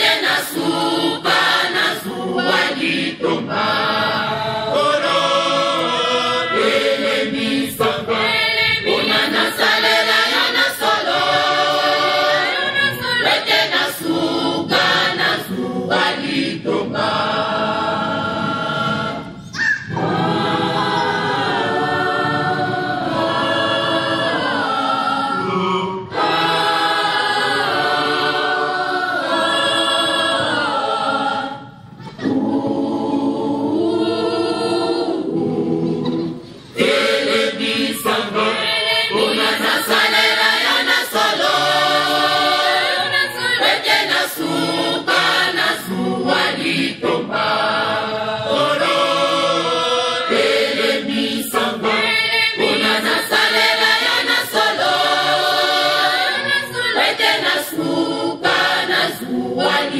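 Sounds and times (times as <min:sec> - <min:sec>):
mixed choir singing in harmony: 0:00.0 - 0:59.9.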